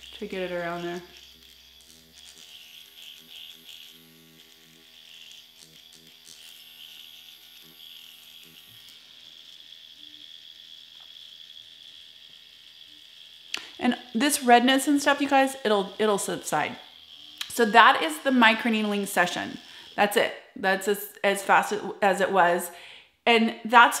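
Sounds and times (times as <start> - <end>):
electric pen high buzz: 0.0 - 23.0.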